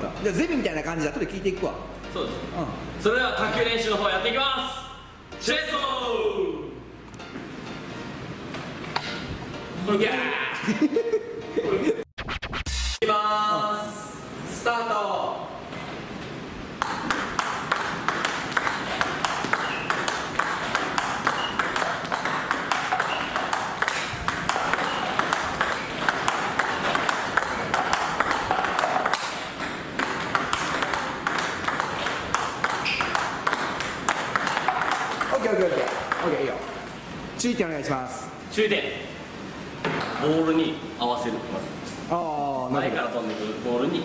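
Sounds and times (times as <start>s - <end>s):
table tennis ball clicks: 16.2s - 36.4s.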